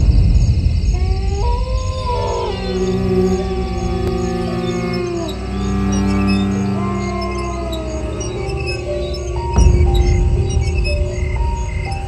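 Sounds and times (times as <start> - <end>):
deep rumbling drone: 0.0 - 12.0
high howl-like tone: 0.9 - 12.0.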